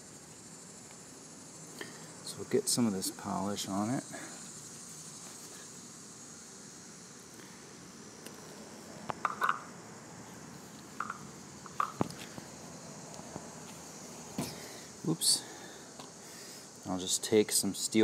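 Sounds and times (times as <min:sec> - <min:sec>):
faint high hiss: 0:00.0 - 0:18.0.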